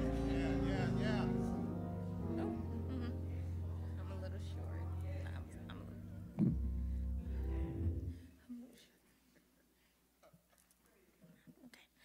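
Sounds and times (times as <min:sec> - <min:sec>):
low sustained bass note: 0:00.0 - 0:08.2.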